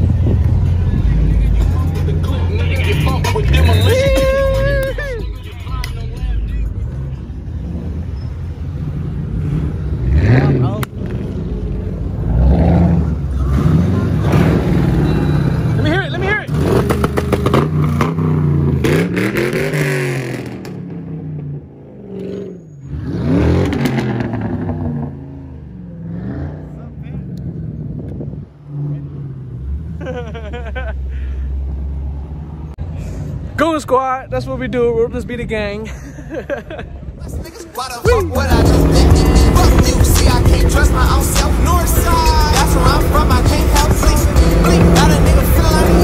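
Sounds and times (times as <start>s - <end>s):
car engine rumbling: 0.0s - 46.0s
laughter: 30.0s - 31.3s, 35.9s - 37.0s.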